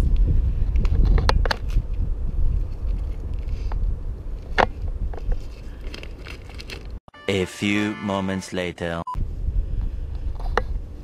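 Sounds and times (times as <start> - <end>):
wind rumbling on microphone: 0.0 - 7.0, 9.2 - 11.0
short beep: 7.1 - 9.2.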